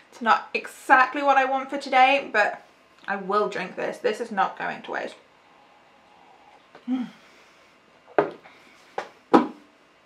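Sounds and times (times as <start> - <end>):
closed-mouth hum: 4.6 - 10.0.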